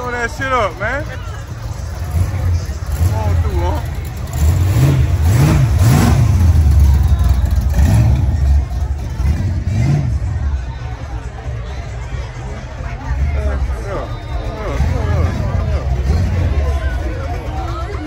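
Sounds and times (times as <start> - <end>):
car engine idling and revving: 0.0 - 18.0.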